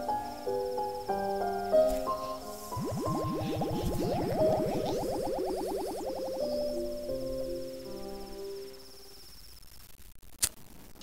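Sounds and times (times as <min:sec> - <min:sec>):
high cricket-like chirping: 0:00.0 - 0:09.9
rapid rising synth pitch glides: 0:02.6 - 0:07.0
sustained soundtrack tones: 0:02.6 - 0:07.1.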